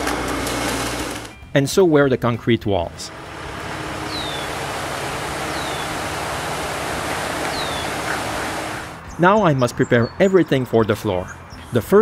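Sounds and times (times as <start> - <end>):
concrete pump rushing: 0.0 - 1.4, 3.1 - 9.0
high falling chirps: 3.4 - 9.0.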